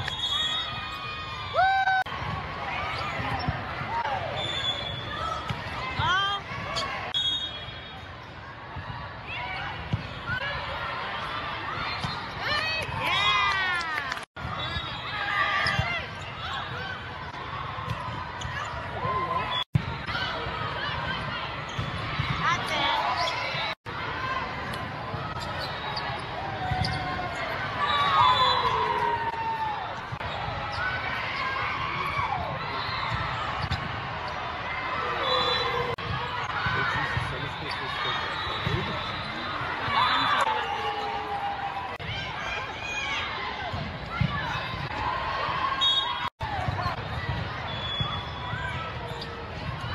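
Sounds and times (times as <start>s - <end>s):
players chatter and shouts: 0.0s - 49.9s
shoes squealing on gym floor: 4.3s - 5.2s, 6.6s - 8.0s, 25.3s - 29.1s, 45.8s - 49.4s.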